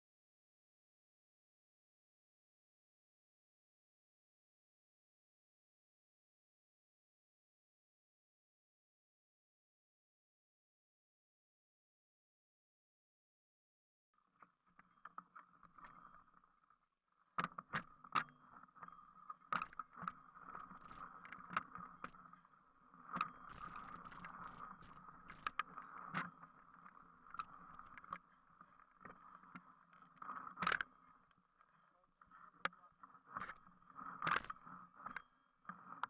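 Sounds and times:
mountain bike on rough trail: 0:19.6 - 0:28.3
bike knocking and rattling: 0:23.1 - 0:25.6.

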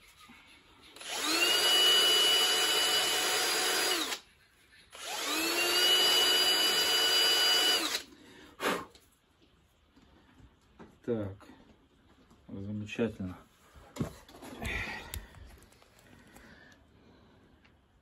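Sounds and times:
rotary grinder whine: 0:01.0 - 0:04.2, 0:05.0 - 0:08.1.

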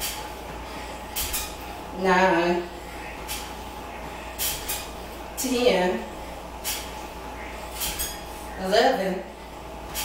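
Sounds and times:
low steady hum: 0:00.0 - 0:10.0
movement and breath sounds: 0:00.0 - 0:10.0.

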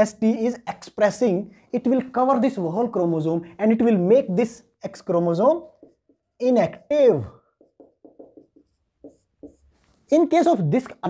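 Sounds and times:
marker writing on whiteboard: 0:03.8 - 0:11.0.

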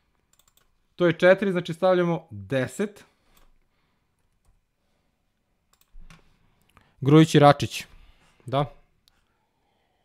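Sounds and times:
keyboard and mouse clicks: 0:00.3 - 0:00.7, 0:05.7 - 0:06.8.

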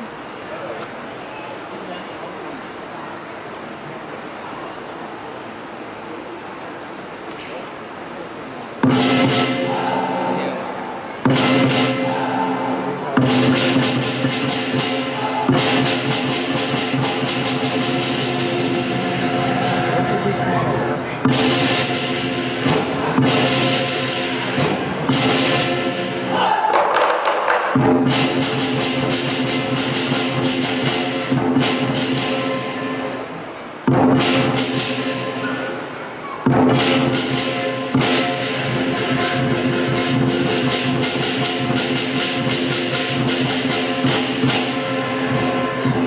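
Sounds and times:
ringing gong: 0:08.8 - 0:26.3, 0:28.2 - 0:36.0, 0:36.7 - 0:46.0
big drum fast rhythm: 0:08.8 - 0:46.0
clashing cymbals: 0:08.8 - 0:46.0.

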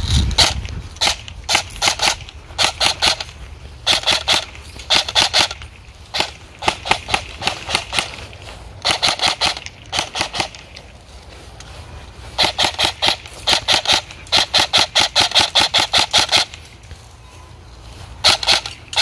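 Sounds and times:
airsoft gun firing single shots: 0:00.4 - 0:08.2, 0:08.8 - 0:10.6, 0:12.4 - 0:16.6, 0:18.2 - 0:19.0.

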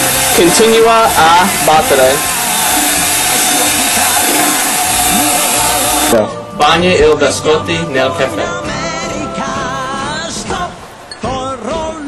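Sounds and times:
electric hand mixer whining: 0:00.0 - 0:06.2.

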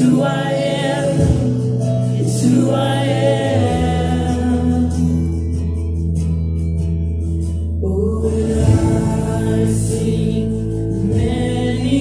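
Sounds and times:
woman singing: 0:00.0 - 0:05.1
congregation singing: 0:00.0 - 0:05.5, 0:07.9 - 0:12.0.

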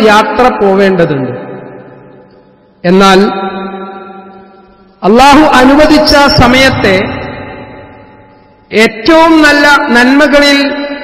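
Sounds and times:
man speaking with echo: 0:00.0 - 0:11.0.

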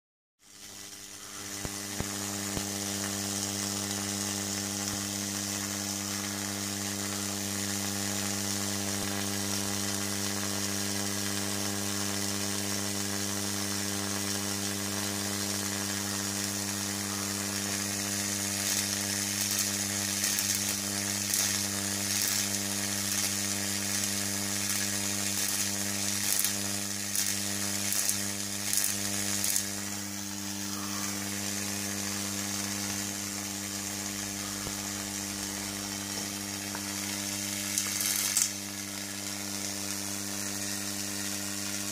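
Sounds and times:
electric discharge crackles: 0:00.4 - 0:41.9
tesla coil buzz and hiss: 0:00.4 - 0:41.9.

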